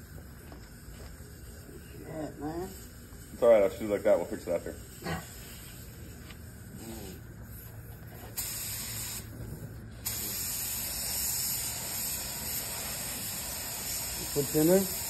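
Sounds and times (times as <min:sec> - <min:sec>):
paint spray gun hissing: 0:05.3 - 0:09.3, 0:10.0 - 0:15.0.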